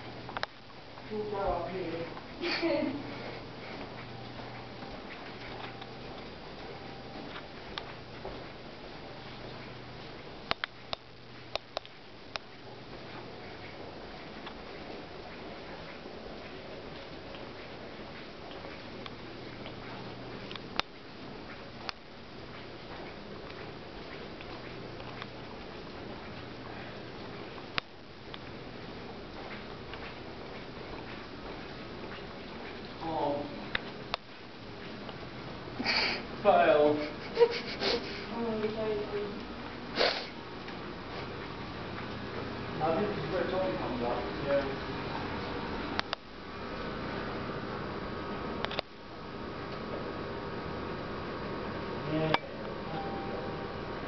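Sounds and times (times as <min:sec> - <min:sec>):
low background hum: 0:00.0 - 0:54.0
low background noise: 0:00.0 - 0:54.0
footstep clicks and taps: 0:02.1 - 0:36.1, 0:40.6 - 0:46.3
person sniffing: 0:35.8 - 0:36.3, 0:37.6 - 0:38.3, 0:39.9 - 0:40.4.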